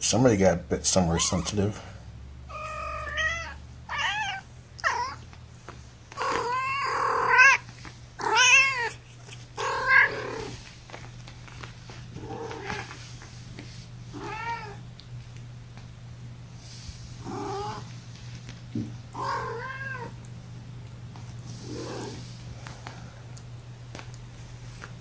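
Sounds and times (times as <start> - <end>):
kittens mewing: 1.0 - 1.9, 2.5 - 5.3, 6.1 - 10.6, 14.1 - 14.9, 17.2 - 17.9, 19.1 - 20.2.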